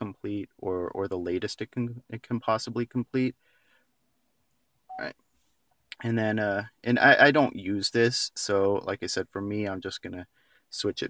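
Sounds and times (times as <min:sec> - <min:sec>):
touchscreen beep: 0:04.9 - 0:05.1.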